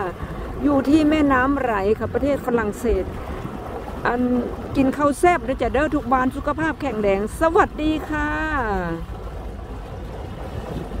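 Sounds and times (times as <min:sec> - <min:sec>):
boat engine rumble: 0:00.0 - 0:11.0
wind noise on microphone: 0:00.0 - 0:11.0.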